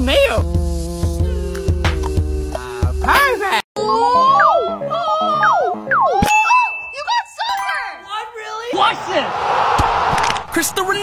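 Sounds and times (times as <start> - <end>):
held high ding: 6.2 - 7.9.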